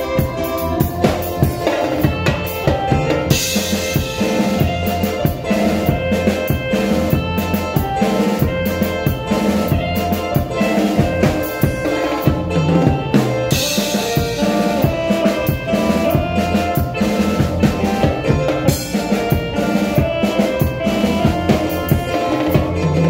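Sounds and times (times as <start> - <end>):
band playing: 0.0 - 23.0.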